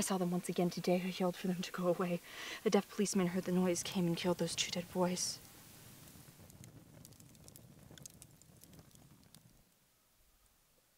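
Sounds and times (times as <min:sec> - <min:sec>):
faint campfire crackles: 0:00.0 - 0:10.9.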